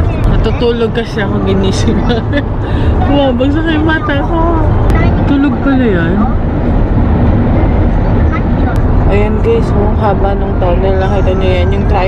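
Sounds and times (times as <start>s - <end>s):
engine hum: 0.0s - 12.0s
road and tyre noise: 0.0s - 12.0s.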